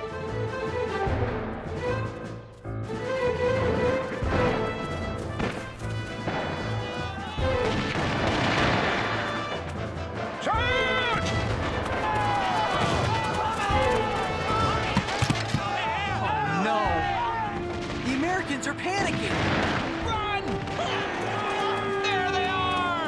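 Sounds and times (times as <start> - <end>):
dramatic orchestral music: 0.0 - 23.0
musket shots: 4.2 - 9.7
men yelling: 6.7 - 7.8, 10.4 - 17.8, 20.0 - 23.0.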